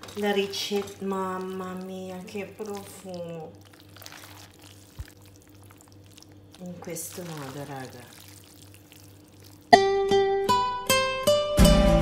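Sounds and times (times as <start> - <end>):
pasta tossed with wooden spoon: 0.0 - 9.7
faint steady hum: 0.0 - 10.2.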